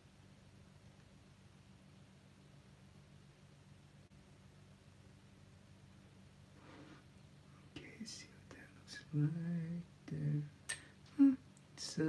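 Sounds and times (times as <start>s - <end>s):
low electrical hum: 0.0s - 12.0s
man whispering: 7.6s - 10.6s.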